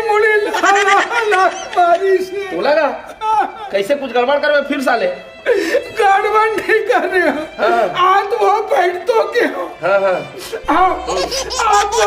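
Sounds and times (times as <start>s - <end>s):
man laughing loudly: 0.4s - 2.2s, 11.0s - 12.0s.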